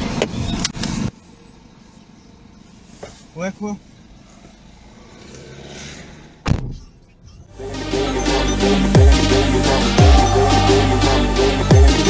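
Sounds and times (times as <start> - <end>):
traffic: 0.0 - 12.0
electronic music with a beat: 7.5 - 12.0.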